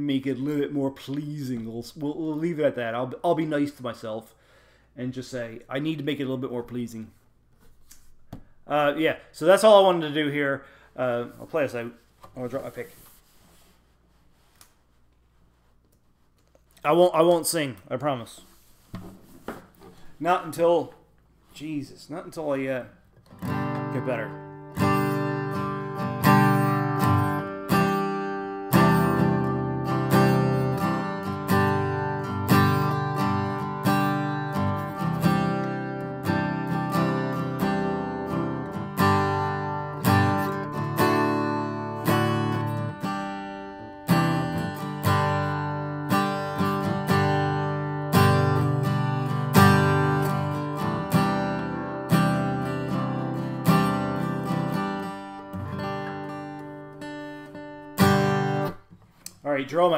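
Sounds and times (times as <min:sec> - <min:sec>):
acoustic guitar strumming: 0:23.2 - 0:58.9.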